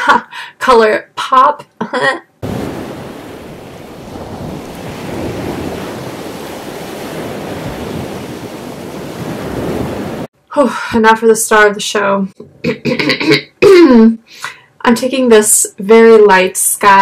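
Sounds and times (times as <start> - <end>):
steady rushing noise: 2.4 - 10.3.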